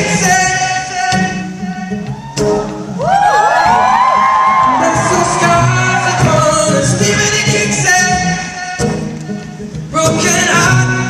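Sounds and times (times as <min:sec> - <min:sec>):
man singing: 0:00.0 - 0:02.4, 0:04.6 - 0:11.0
acoustic guitar: 0:00.0 - 0:11.0
audience whooping: 0:01.9 - 0:07.4.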